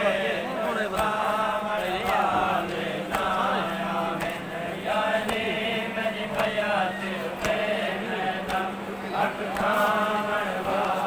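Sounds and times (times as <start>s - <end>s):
men chanting devotional song: 0.0s - 11.0s.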